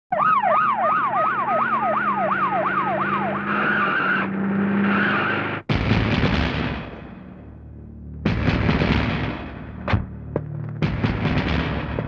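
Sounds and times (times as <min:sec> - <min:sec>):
siren sweeping up and down: 0:00.1 - 0:05.6.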